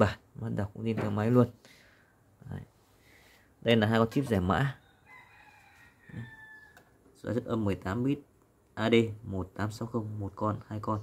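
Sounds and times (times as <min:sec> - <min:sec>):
rooster crowing faintly: 0:04.1 - 0:07.0.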